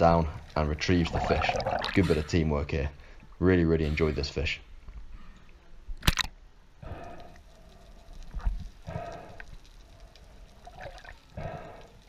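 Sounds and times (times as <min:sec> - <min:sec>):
sea water sloshing and gurgling: 0:01.0 - 0:02.2.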